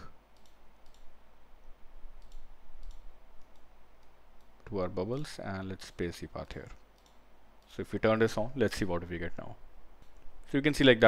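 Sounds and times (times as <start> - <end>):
faint low hum: 0.0 - 11.0
computer mouse clicks: 0.3 - 1.2, 2.1 - 4.6, 5.8 - 7.8, 10.0 - 10.3.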